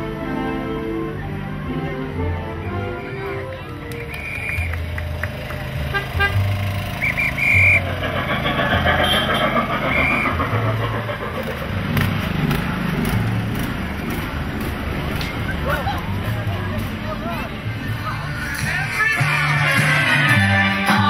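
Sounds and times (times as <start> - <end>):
low engine rumble: 0.0 - 21.0
high whistle blasts: 4.1 - 4.8, 7.0 - 7.9, 9.0 - 10.4.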